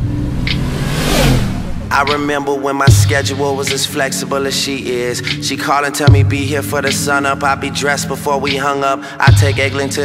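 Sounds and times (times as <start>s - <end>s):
car revving and sweeping past: 0.0s - 2.5s
low bass notes: 0.0s - 3.8s
rapping: 1.9s - 10.0s.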